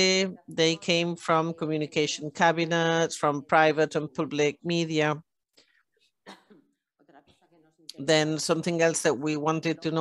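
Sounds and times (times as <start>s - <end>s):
faint throat clearing: 6.1s - 6.9s.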